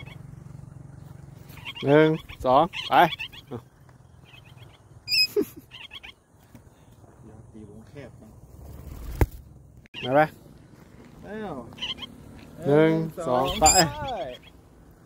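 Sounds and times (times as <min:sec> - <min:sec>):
parrot call: 0:00.0 - 0:00.3, 0:01.4 - 0:06.4, 0:09.9 - 0:10.3, 0:11.7 - 0:12.2, 0:13.3 - 0:14.6.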